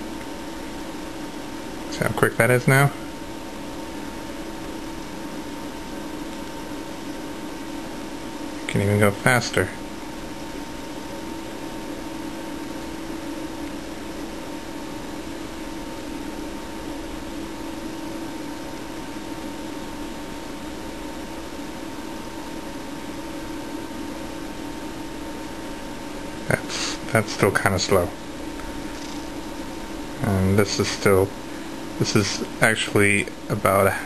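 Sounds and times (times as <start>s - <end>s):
low room hum: 0.0s - 34.0s
even hiss: 26.4s - 28.1s.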